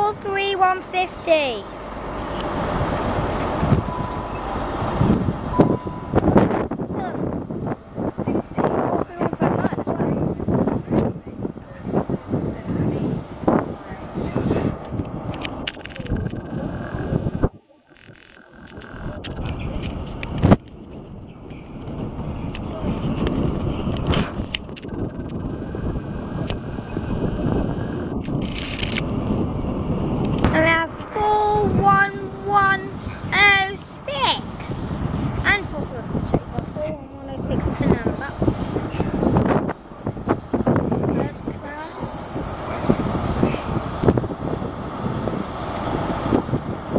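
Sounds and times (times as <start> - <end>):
person speaking: 0.0 - 1.7, 35.5 - 39.0, 41.1 - 43.0
train wheels rumbling on rail: 0.0 - 17.4, 18.6 - 46.9.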